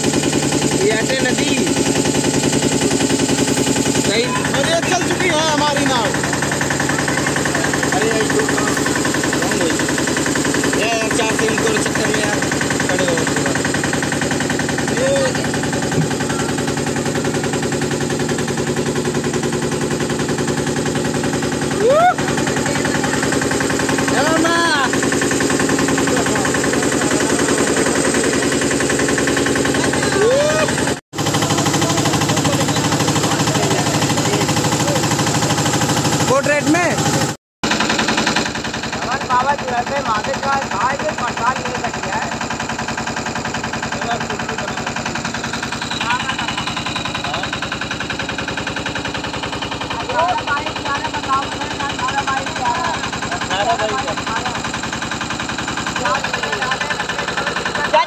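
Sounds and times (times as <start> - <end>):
boat engine knocking: 0.0 - 58.0.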